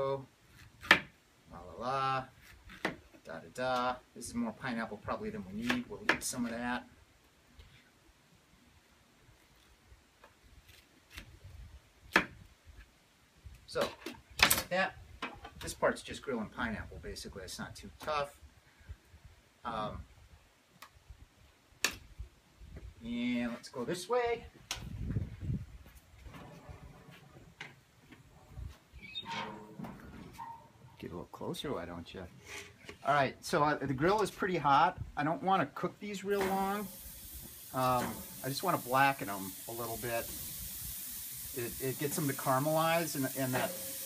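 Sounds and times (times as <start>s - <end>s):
grill lid creak: 29.0s - 30.8s.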